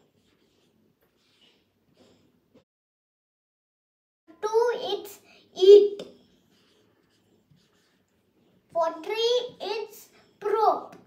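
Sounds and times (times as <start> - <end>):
marker scratching on whiteboard: 0.0 - 1.7, 4.4 - 11.0
child speaking: 4.3 - 6.2, 8.7 - 11.0.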